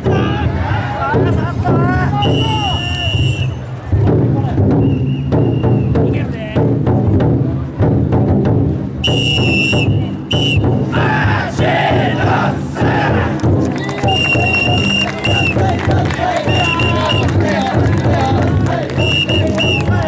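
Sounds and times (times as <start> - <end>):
taiko drum beat: 0.0 - 2.8, 3.9 - 20.0
crowd shouting and chanting: 0.0 - 4.8, 9.8 - 20.0
whistle blasts: 2.2 - 3.7, 4.8 - 6.0, 9.0 - 10.8, 14.0 - 15.6, 16.5 - 17.4, 19.0 - 20.0.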